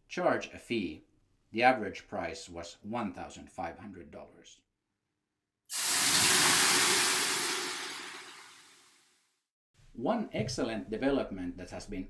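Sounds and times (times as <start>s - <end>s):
water hissing on hot stones: 5.7s - 8.7s.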